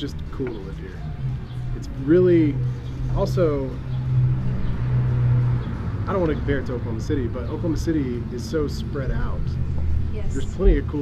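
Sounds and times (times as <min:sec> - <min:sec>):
city street traffic hum: 0:00.0 - 0:11.0.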